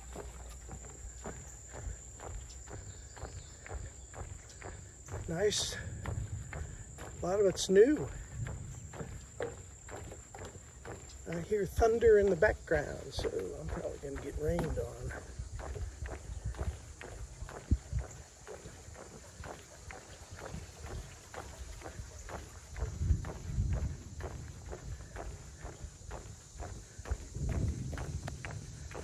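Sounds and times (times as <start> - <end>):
boots on wooden boardwalk: 0.0 - 29.0
distant thunder rumble: 5.2 - 9.9, 27.1 - 29.0.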